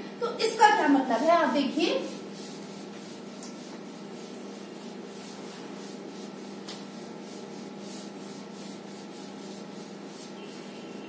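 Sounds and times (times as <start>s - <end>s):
duster rubbing on whiteboard: 0.4s - 11.0s.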